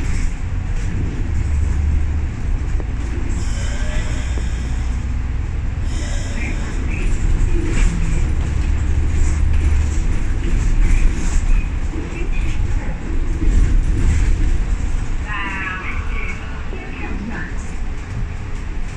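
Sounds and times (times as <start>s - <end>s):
bus engine and road rumble: 0.0s - 18.9s.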